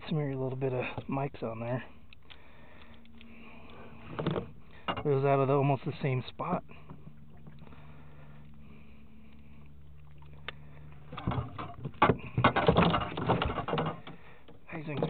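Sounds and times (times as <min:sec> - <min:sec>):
low steady hum: 0:00.0 - 0:15.0
fish knocking in landing net: 0:11.2 - 0:14.2.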